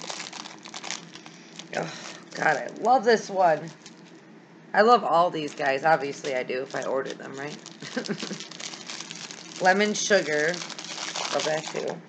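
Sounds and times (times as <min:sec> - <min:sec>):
plastic wrapping crinkling: 0:00.0 - 0:04.2, 0:05.3 - 0:12.0.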